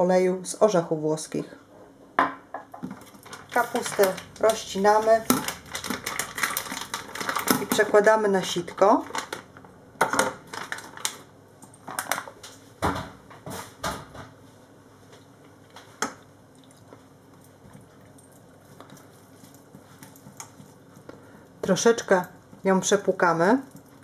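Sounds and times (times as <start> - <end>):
plastic bag crinkling: 2.9 - 12.4.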